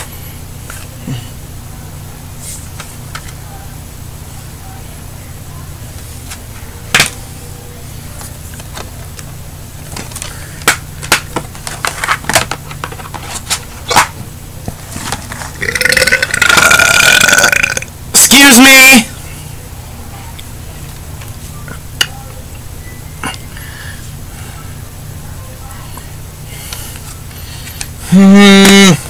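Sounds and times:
steady low hum: 0.0 - 29.0
dvd case plastic rustle: 9.9 - 15.6
man belching: 15.6 - 17.9.

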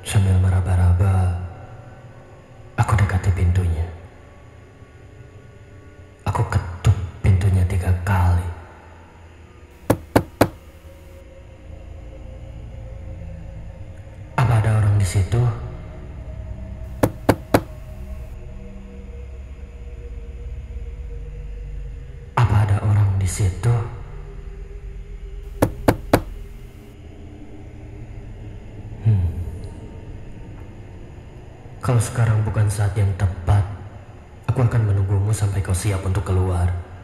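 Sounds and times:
knocks on a door: 9.8 - 11.1, 16.9 - 18.2, 25.5 - 26.8.

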